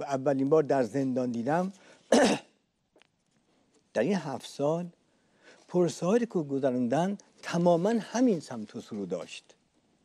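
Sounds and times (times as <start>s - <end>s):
man clearing his throat: 2.1s - 2.6s.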